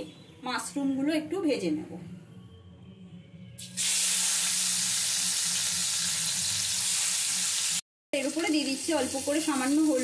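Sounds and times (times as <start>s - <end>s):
food sizzling in hot oil: 3.6s - 10.0s.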